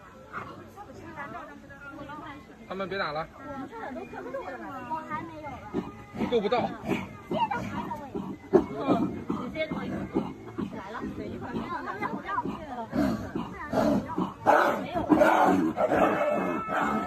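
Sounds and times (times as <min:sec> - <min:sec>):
people's voices: 0:00.0 - 0:17.0
cubs growling and snarling: 0:05.8 - 0:17.0.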